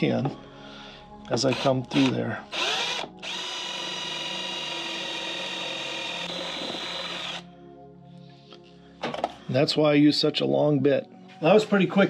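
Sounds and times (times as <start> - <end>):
power drill whining: 1.4 - 7.4.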